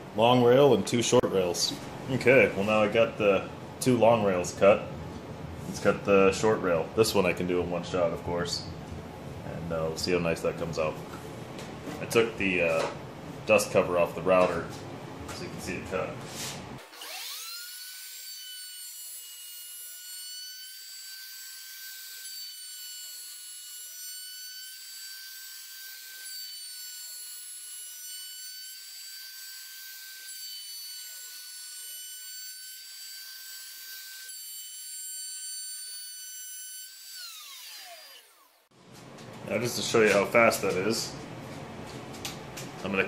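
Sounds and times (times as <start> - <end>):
router bit cutting wood: 16.8 - 38.7
router motor whining: 16.8 - 38.7.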